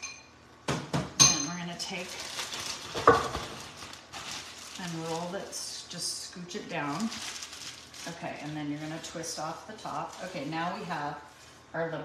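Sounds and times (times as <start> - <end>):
plastic bag rustling and crinkling: 1.7 - 11.6.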